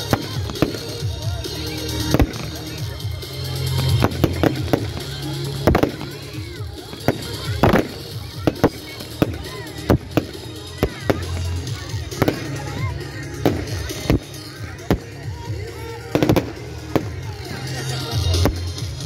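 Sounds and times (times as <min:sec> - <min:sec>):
fireworks banging: 0:00.0 - 0:19.0.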